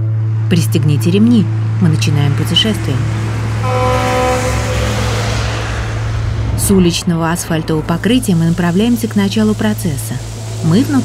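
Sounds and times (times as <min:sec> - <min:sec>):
low hum: 0:00.0 - 0:11.0
truck passing: 0:00.0 - 0:11.0
rushing noise: 0:01.1 - 0:11.0
truck horn: 0:03.2 - 0:06.2.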